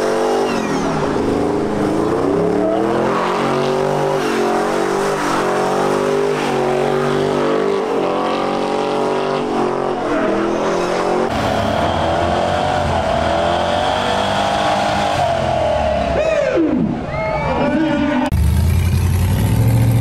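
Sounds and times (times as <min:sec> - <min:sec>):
engine revving high: 0:00.0 - 0:16.2.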